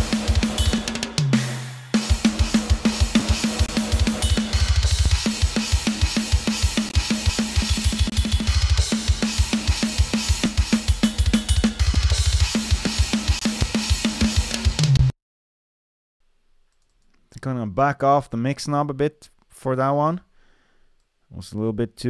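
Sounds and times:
drum kit playing metal groove: 0.0s - 15.1s.

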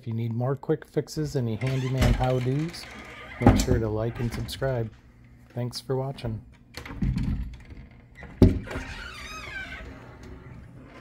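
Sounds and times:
door creaking: 1.2s - 5.2s, 6.7s - 11.0s
door rumbling in track: 1.3s - 5.0s.

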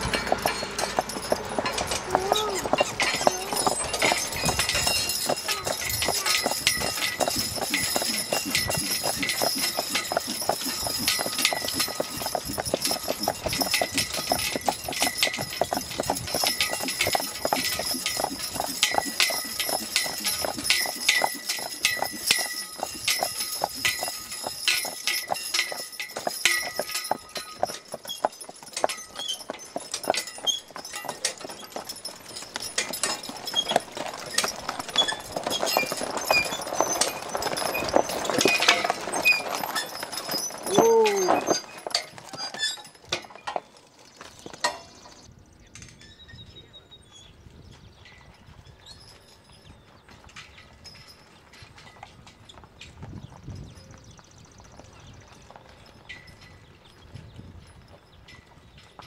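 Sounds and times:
horse hoofbeats on paved road: 0.0s - 45.3s, 46.8s - 59.0s.

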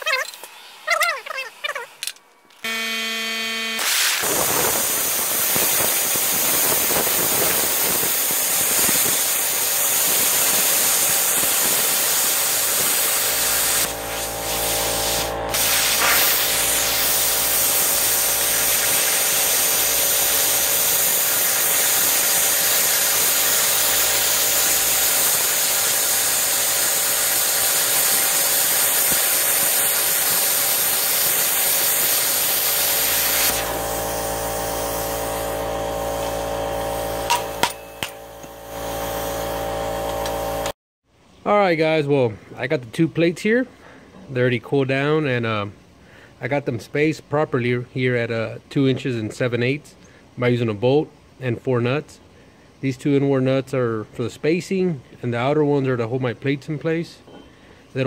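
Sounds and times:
steady hum: 2.6s - 5.4s
plasma cutter hissing: 3.8s - 40.7s.

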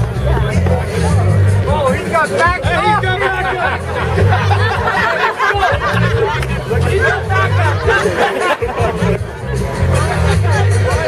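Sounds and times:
crowd chatter: 0.0s - 11.0s
loud music with deep bass: 0.0s - 11.0s.

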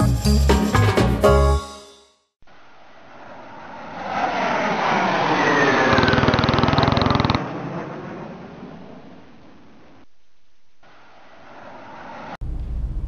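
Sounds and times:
motor vehicle passing: 2.5s - 9.4s, 10.8s - 13.0s.

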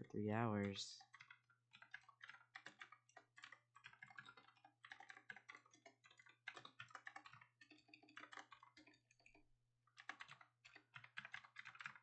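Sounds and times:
computer keyboard typing: 0.3s - 12.0s.

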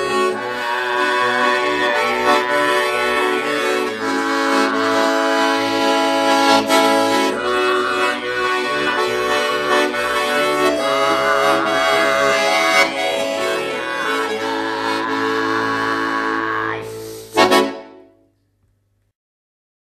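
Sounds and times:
button accordion chords: 0.0s - 18.1s.

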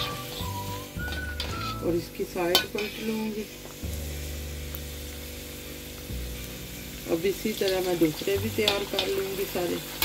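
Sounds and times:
low even hum: 0.0s - 9.1s
food sizzling in oil: 0.0s - 10.0s.

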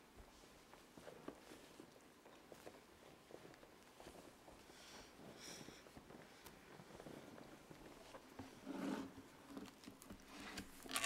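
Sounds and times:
taps and rustles of people moving: 0.0s - 10.9s.

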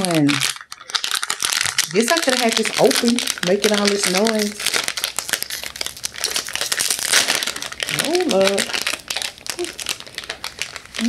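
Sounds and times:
snack wrapper crinkling: 0.0s - 11.0s.

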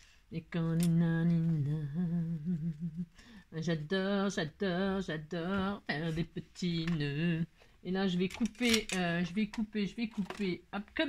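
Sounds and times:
woman humming: 0.5s - 3.1s.

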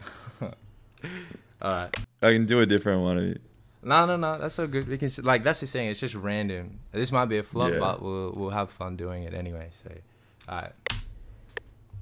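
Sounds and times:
sharp clicks: 0.9s - 2.1s, 10.4s - 11.8s
spoken word: 7.6s - 8.0s.

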